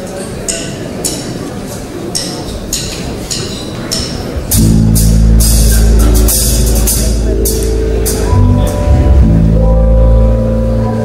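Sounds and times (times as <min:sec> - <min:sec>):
jazz band playing: 0:04.5 - 0:11.0.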